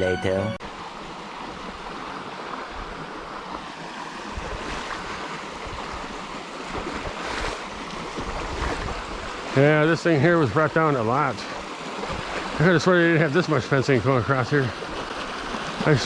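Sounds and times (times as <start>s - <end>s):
creek water running over rocks: 0.2s - 16.0s.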